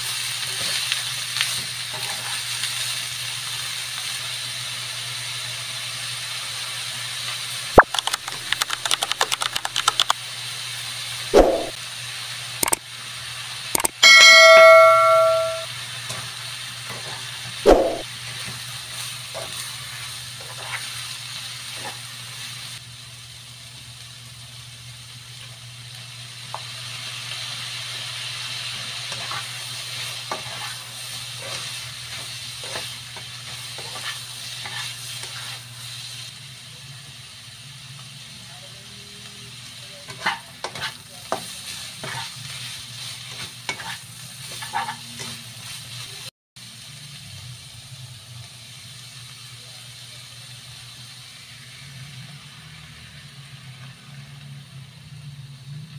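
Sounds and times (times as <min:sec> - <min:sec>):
vegetables sizzling in a wok: 0:00.0 - 0:08.5, 0:09.8 - 0:55.9
spatula scraping clicks: 0:07.8 - 0:10.1, 0:13.8 - 0:14.0
sharp metal clang: 0:13.8 - 0:15.7
bell chime: 0:14.0 - 0:15.7.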